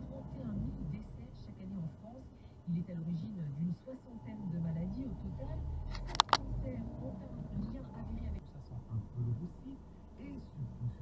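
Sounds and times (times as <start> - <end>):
car cabin engine and road rumble: 0.0 - 11.0
sharp clicks: 5.9 - 6.5.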